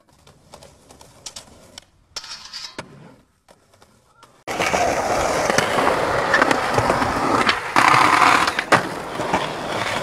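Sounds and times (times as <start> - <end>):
skateboard clicks and knocks: 0.0 - 10.0
skateboard scraping: 0.0 - 10.0
skateboard wheels rolling on concrete: 0.0 - 10.0.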